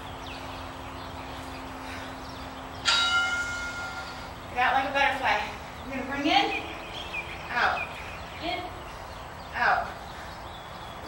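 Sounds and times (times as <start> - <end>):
bell-like chime: 2.8 - 4.3.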